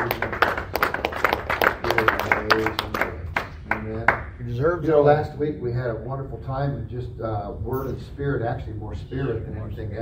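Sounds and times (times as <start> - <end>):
people clapping: 0.0 - 4.4.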